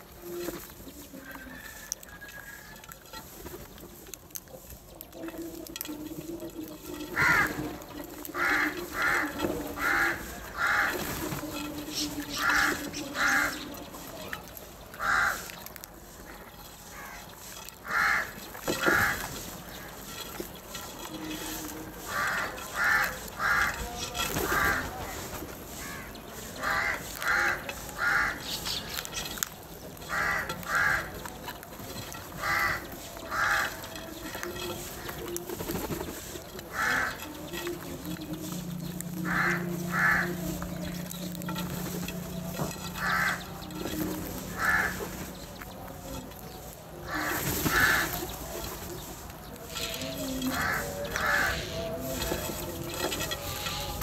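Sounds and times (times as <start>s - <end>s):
crows cawing: 1.1s - 3.0s, 6.8s - 29.4s, 30.0s - 45.8s, 47.0s - 49.1s, 50.1s - 54.0s.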